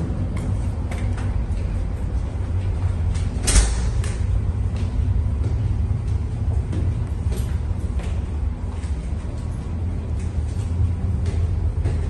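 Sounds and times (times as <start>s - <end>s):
footsteps climbing stairs: 0.0s - 12.0s
ship engines rumbling: 0.0s - 12.0s.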